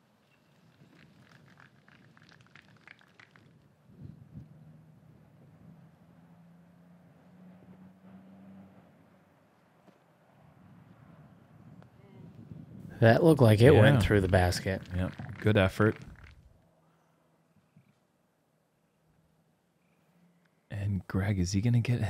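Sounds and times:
faint ticks: 19.8 - 20.6.

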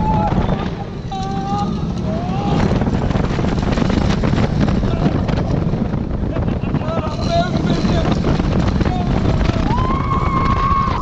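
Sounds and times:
riders crying out: 0.0 - 2.8
roller coaster rumbling on track: 0.0 - 11.0
wind buffeting microphone: 0.0 - 11.0.

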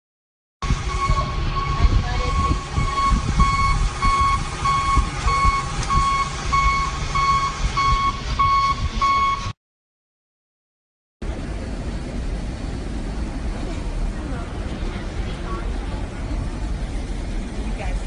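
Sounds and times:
vehicle rumble: 0.6 - 9.6, 11.2 - 18.0
vehicle warning beeper: 0.6 - 9.6.

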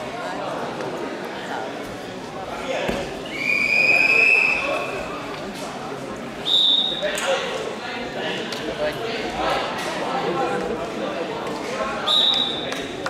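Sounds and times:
hall chatter: 0.0 - 13.0
referee's whistle: 3.3 - 5.0, 6.4 - 7.0, 12.0 - 12.6.

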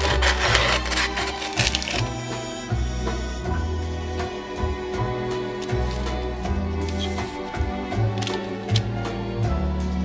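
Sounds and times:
scissors snipping paper: 0.0 - 2.2, 6.8 - 7.4, 8.1 - 8.8
background music: 0.0 - 10.0.

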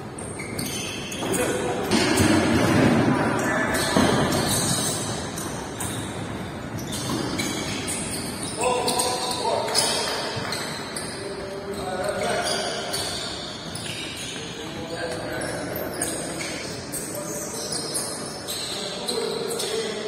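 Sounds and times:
players' indistinct voices: 0.4 - 20.0.

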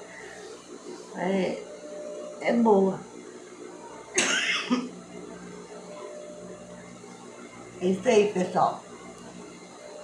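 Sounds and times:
person coughing: 4.2 - 4.9.

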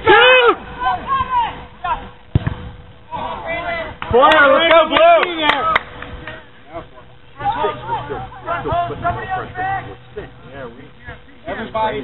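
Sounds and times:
players shouting: 0.0 - 2.2, 3.0 - 10.4
ball being kicked: 2.3 - 2.8.

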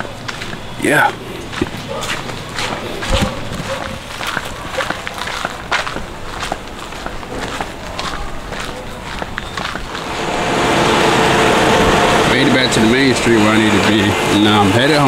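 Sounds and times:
footsteps on sandy concrete: 0.0 - 10.2
steady hum with held tones: 9.9 - 14.8.

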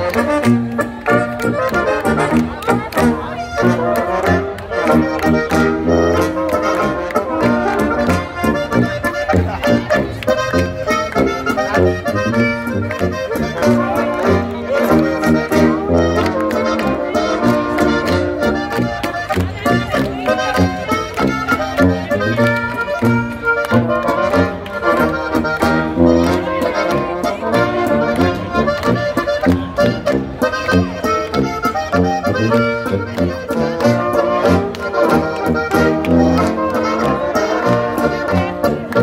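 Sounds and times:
accordion: 0.0 - 39.0
folk dance band over pa: 0.0 - 39.0
tuba bass: 0.0 - 39.0.

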